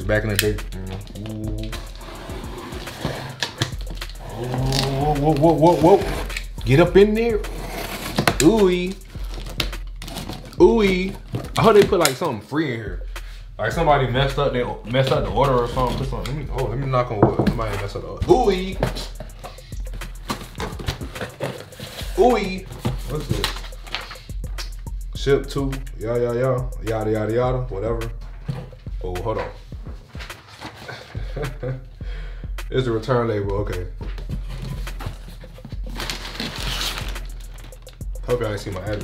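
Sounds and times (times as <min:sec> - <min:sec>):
paper rustling and scraping: 0:01.0 - 0:06.6, 0:07.3 - 0:11.8, 0:18.6 - 0:24.3, 0:30.2 - 0:31.2, 0:34.2 - 0:39.0.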